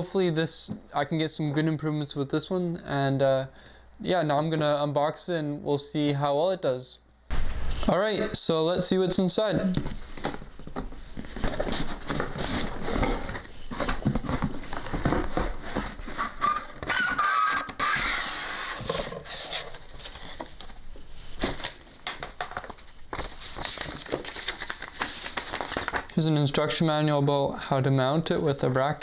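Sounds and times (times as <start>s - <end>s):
cardboard and wrapping rustling: 9.8s - 17.2s, 18.0s - 26.1s.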